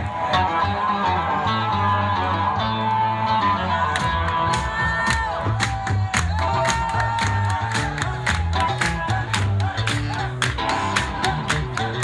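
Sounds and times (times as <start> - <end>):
bass guitar line: 0.0 - 12.0.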